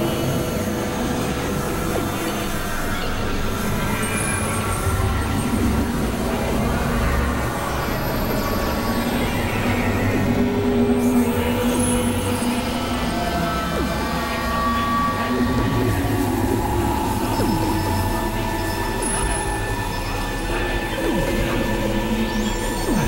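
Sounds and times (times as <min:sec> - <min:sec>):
synthesizer drone tones: 0:04.4 - 0:23.0.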